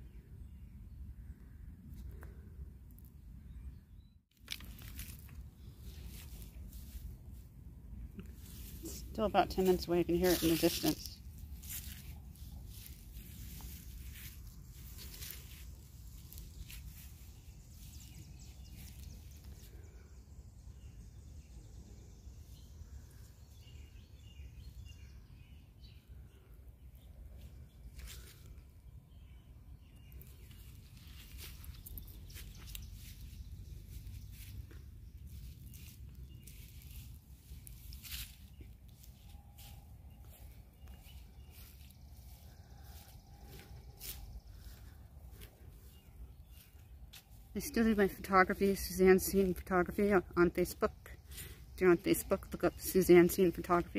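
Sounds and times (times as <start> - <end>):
footsteps on grass and pavement: 4.3 - 20.0, 30.2 - 50.1
bird chirps: 37.6 - 47.6.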